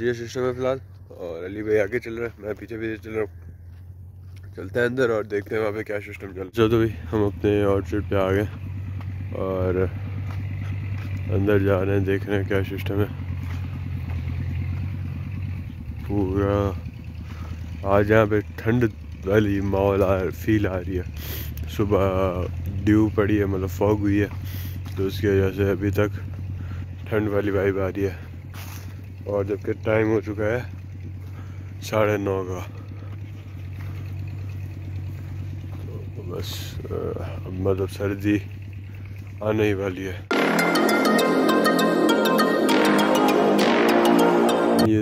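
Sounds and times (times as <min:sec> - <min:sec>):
engine chugging: 0:00.0 - 0:45.0.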